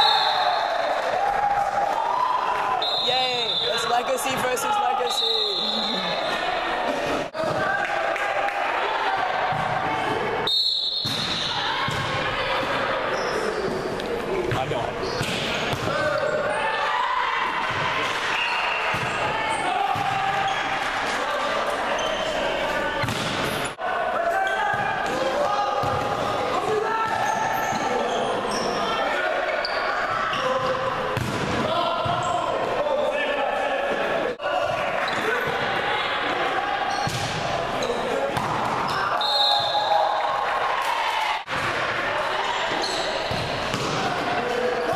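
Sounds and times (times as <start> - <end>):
referee's whistle: 0.0 - 0.8, 2.8 - 4.0, 5.0 - 6.4, 10.4 - 11.7, 38.9 - 40.0
shouting and chatter in a hall: 0.0 - 44.9
volleyball hits: 10.9 - 12.9, 14.5 - 16.4, 17.4 - 20.8, 23.0 - 23.7, 30.4 - 32.3, 36.9 - 40.1, 43.2 - 44.5.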